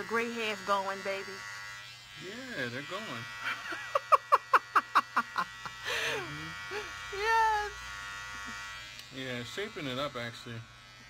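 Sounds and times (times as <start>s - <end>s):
eyebrow trimmer buzzing: 0.0s - 11.0s.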